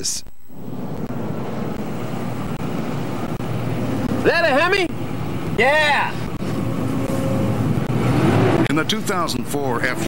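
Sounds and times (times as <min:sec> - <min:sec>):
pickup truck engine running: 0:00.3 - 0:10.0.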